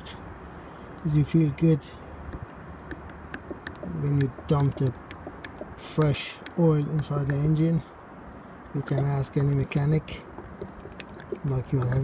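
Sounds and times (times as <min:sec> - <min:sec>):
oil pouring through a funnel: 0:02.3 - 0:06.6, 0:09.8 - 0:12.0
faint clicks: 0:10.3 - 0:12.0.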